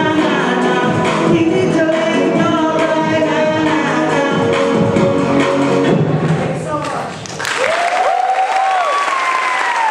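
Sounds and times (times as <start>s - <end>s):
audience applauding: 7.2s - 9.9s.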